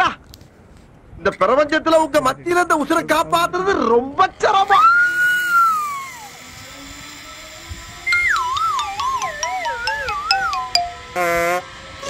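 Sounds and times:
wobbling descending comic tune: 0:08.1 - 0:11.4.

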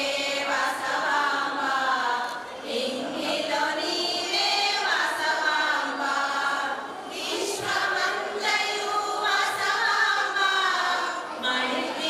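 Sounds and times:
women's choir singing: 0:00.0 - 0:12.0.

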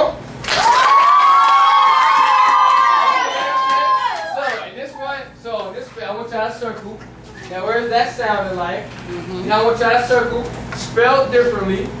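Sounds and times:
children cheering: 0:00.5 - 0:04.7.

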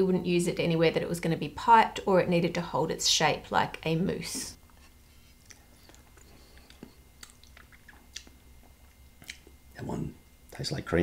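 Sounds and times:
man eating with mouth clicks: 0:05.2 - 0:09.6.

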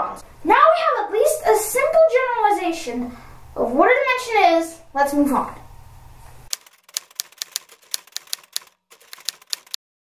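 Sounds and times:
typewriter key clacks: 0:06.5 - 0:09.8.

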